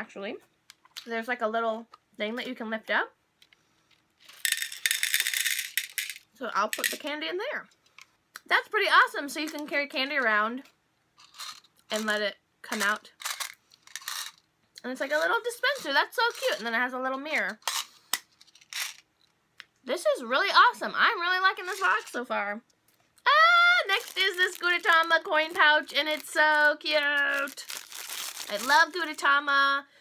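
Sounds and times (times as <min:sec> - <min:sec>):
candies rattling into plastic case: 0:04.2 - 0:07.0, 0:11.2 - 0:14.4, 0:15.1 - 0:16.7, 0:17.4 - 0:19.0, 0:21.6 - 0:22.1, 0:23.3 - 0:29.3.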